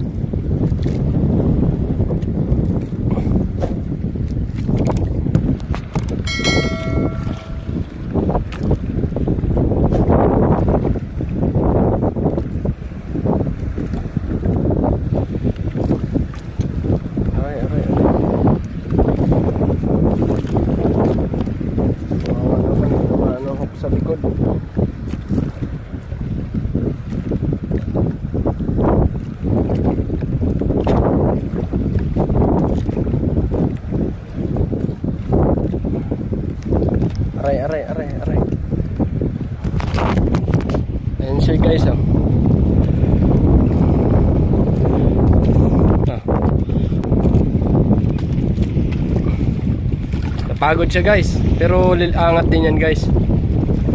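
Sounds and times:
wind buffeting microphone: 0:00.0 - 0:53.9
short electronic chime: 0:06.3 - 0:07.8.

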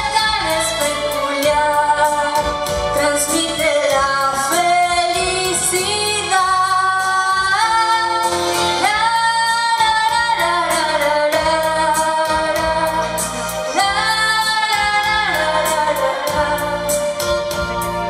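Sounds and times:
music with a steady beat: 0:00.0 - 0:18.0.

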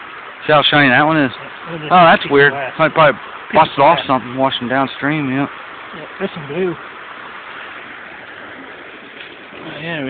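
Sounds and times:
creek water running over stones: 0:00.0 - 0:10.0.

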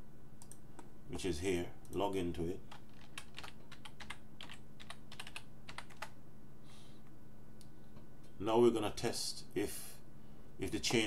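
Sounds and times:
computer keyboard typing: 0:02.7 - 0:06.2.

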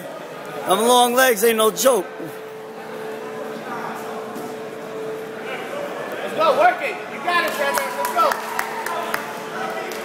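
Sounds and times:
murmur of many voices: 0:00.0 - 0:10.0
steady hum: 0:00.0 - 0:10.0.

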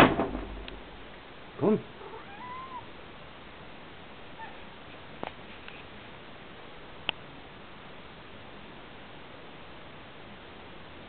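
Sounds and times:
cat meowing softly: 0:02.0 - 0:02.9, 0:04.4 - 0:04.6.

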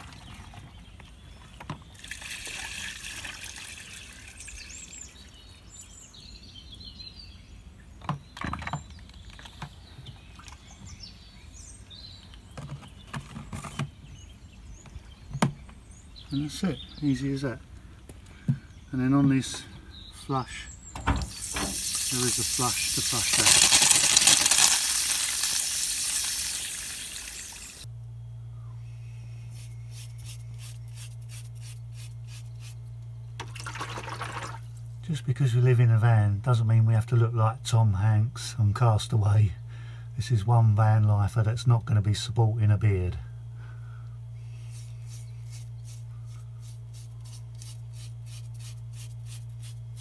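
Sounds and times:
water gushing into drain: 0:02.0 - 0:04.7, 0:21.3 - 0:27.9, 0:33.4 - 0:34.7
low hum: 0:15.8 - 0:50.0
short scratching strokes: 0:29.5 - 0:32.8, 0:44.6 - 0:50.0.

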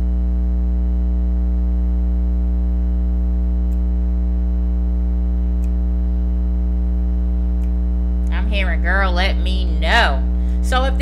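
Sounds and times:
low electrical hum: 0:00.0 - 0:11.0
faint ticks: 0:05.5 - 0:05.8, 0:07.5 - 0:08.4.

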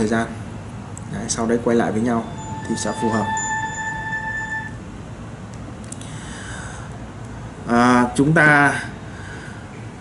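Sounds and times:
faint room hiss: 0:00.0 - 0:10.0
steady beep tone: 0:02.0 - 0:04.8.

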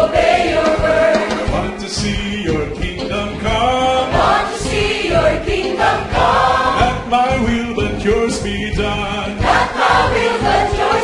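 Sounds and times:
choir singing gospel song: 0:00.0 - 0:11.0.

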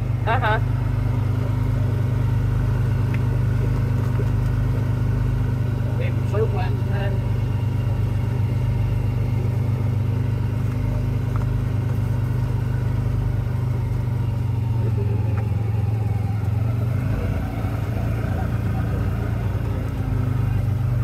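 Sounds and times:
vehicle engine droning: 0:00.0 - 0:21.0.

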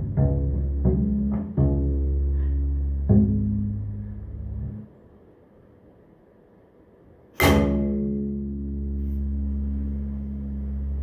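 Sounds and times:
bowed double bass note: 0:00.0 - 0:04.9, 0:07.4 - 0:11.0.

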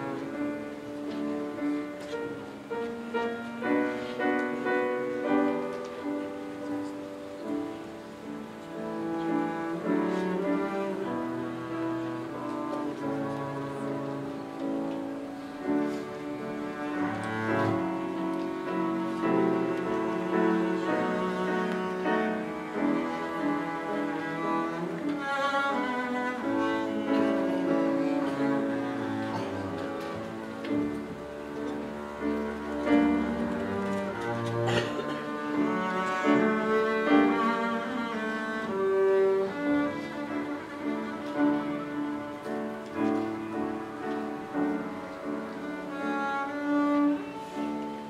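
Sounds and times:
piano accompaniment: 0:00.0 - 0:48.0
bowed double bass melody: 0:07.6 - 0:48.0.

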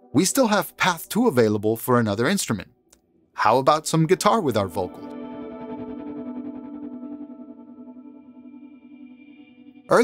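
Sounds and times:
electric guitar chord ringing: 0:04.9 - 0:10.0.

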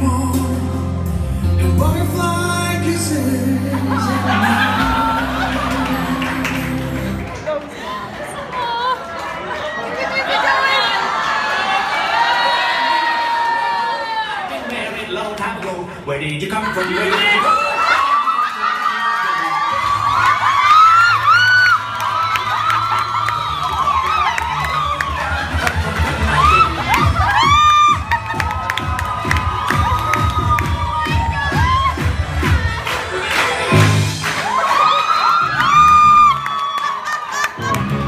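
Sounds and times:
dance music: 0:00.0 - 0:08.8, 0:19.6 - 0:36.7, 0:37.5 - 0:38.0
guests cheering and whooping: 0:03.7 - 0:07.4, 0:08.6 - 0:14.7, 0:16.7 - 0:38.0
music with a beat: 0:25.3 - 0:34.5.

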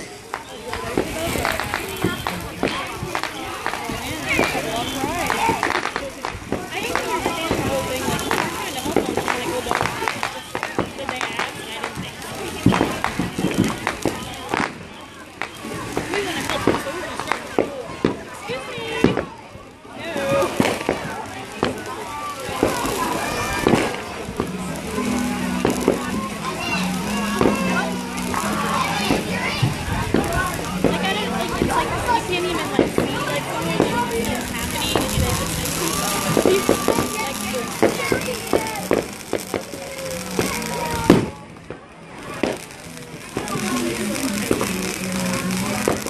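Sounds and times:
fireworks bangs: 0:00.0 - 0:46.0
background voices: 0:20.0 - 0:46.0.

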